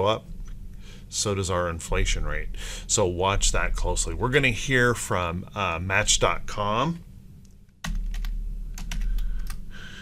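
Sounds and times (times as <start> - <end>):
low hum: 0.0 - 10.0
computer keyboard typing: 7.8 - 9.6.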